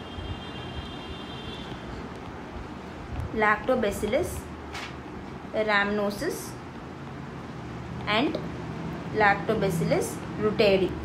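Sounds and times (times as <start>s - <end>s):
low background rumble and hiss: 0.0s - 11.0s.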